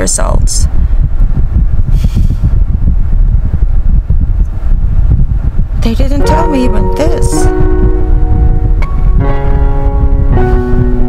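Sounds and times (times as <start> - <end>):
car engine rumble inside cabin: 0.7 - 11.0.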